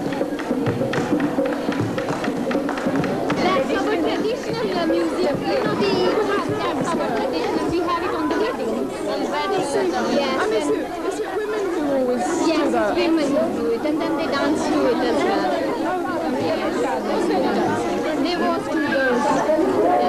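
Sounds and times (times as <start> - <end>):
women chattering: 0.0 - 20.0.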